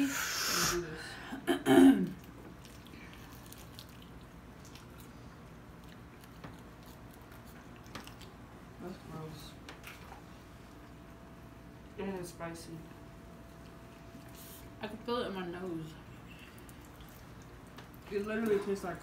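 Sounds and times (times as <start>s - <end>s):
low room noise: 0.0s - 19.0s
people chewing wetly: 2.2s - 8.8s, 13.3s - 14.8s, 16.0s - 18.8s
small clicks and smacks: 5.8s - 8.4s, 16.6s - 18.1s.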